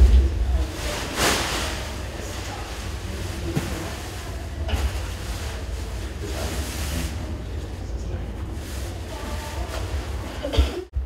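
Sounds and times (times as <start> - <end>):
low room noise rumble: 0.0 - 11.0.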